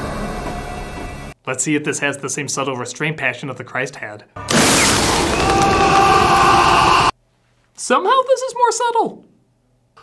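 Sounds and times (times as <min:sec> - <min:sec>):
lightning strike rush of noise: 0:04.5 - 0:06.4
man screaming: 0:05.3 - 0:07.2.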